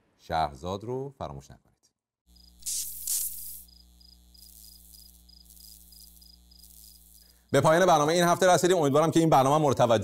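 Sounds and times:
electrical hum: 2.3 - 8.3
high cricket-like chirps: 2.3 - 8.4.

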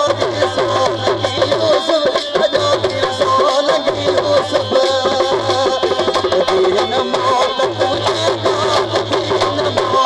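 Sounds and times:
quick tabla drum beat: 0.0 - 10.0
wavering harmonium melody: 0.0 - 10.0.

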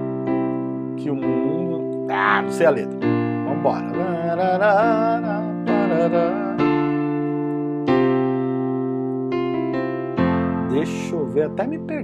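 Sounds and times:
electric piano chords: 0.0 - 12.0
man singing: 3.5 - 6.9.

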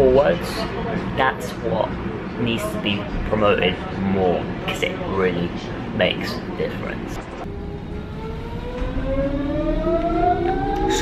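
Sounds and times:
train traction motors whining: 7.2 - 11.0.

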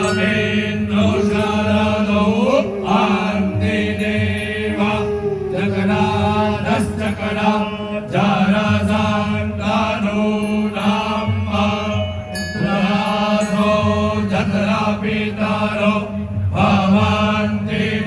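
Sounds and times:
group chanting in unison: 0.0 - 11.8, 12.7 - 18.0
low drone: 0.0 - 18.0.

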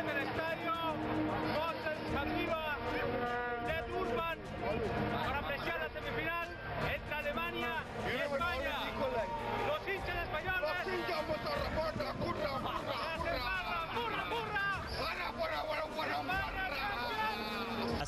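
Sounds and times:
crowd talking and singing: 0.0 - 18.0.

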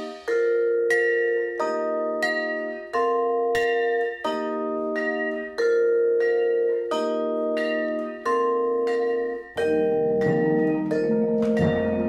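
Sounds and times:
marimba chords: 0.0 - 12.0.

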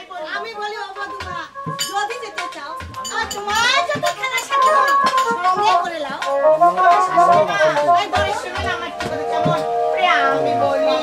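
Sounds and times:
harmonium holding notes: 0.3 - 11.0
high sliding melody: 1.4 - 11.0.

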